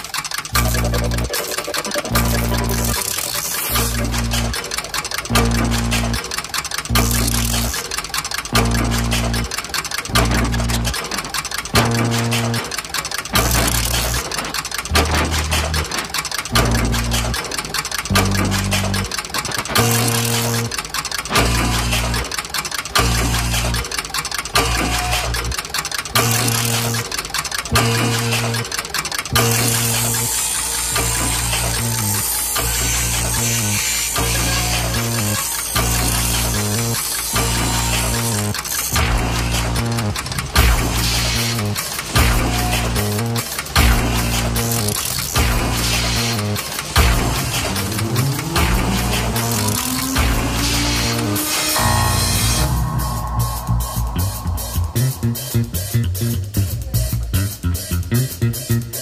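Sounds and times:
repeating bass riff: 0.5s - 4.6s, 5.3s - 6.2s, 6.9s - 7.8s, 8.5s - 9.5s, 10.1s - 11.0s, 11.7s - 12.7s, 13.4s - 14.2s, 14.9s - 15.9s, 16.5s - 17.4s, 18.1s - 20.7s, 21.4s - 22.3s, 23.0s - 23.9s, 26.2s - 27.1s, 27.7s - 28.7s, 29.3s - 30.3s, 31.0s - 59.0s
cymbals: 29.4s - 58.0s
band playing rhythmic music: 34.2s - 59.0s.

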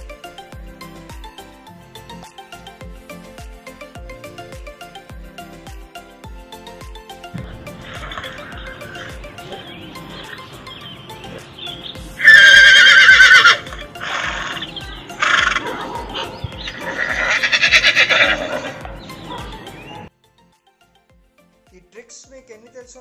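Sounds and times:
background music with steady beat: 0.0s - 23.0s
horse whinnying: 12.2s - 14.6s, 16.8s - 18.8s.

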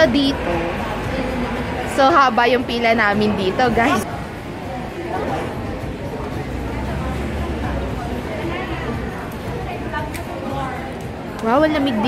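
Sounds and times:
background chatter of people: 0.0s - 12.0s.

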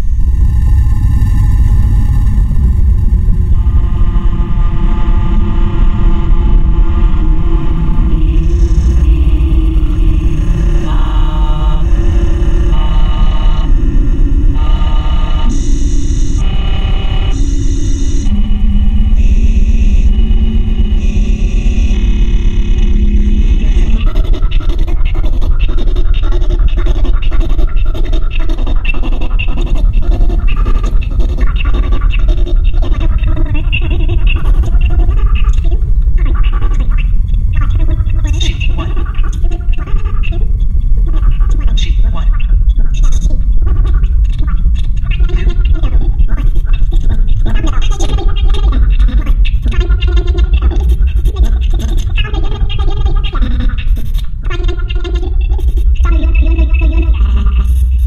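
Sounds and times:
heavy low drone music: 0.0s - 26.2s
stuttering crackling texture: 0.0s - 58.0s.

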